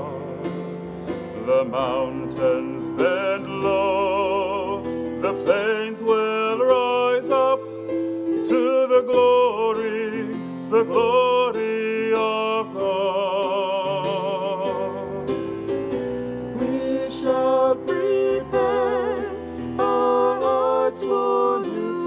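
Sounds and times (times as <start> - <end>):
person singing a carol: 1.4 - 7.8, 8.4 - 15.5, 16.5 - 22.0.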